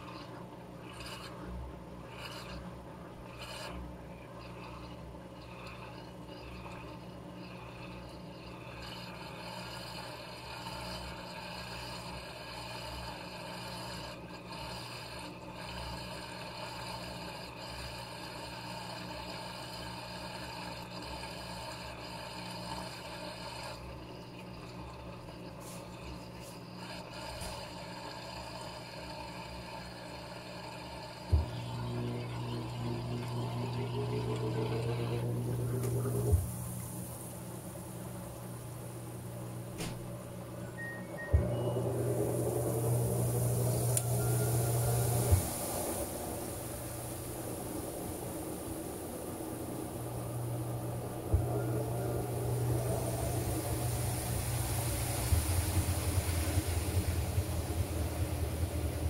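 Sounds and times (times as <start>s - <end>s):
washing machine humming: 0.0s - 59.0s
drum spinning up whine: 31.2s - 59.0s.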